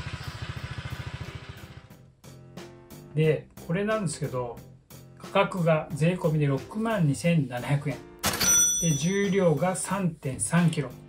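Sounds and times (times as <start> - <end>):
scooter engine pulsing exhaust: 0.0 - 2.1.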